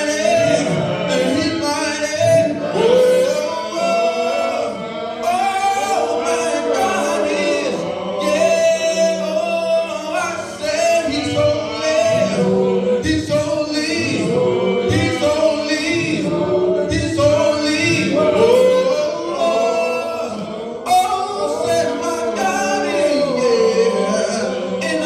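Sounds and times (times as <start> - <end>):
group singing gospel: 0.0 - 25.0.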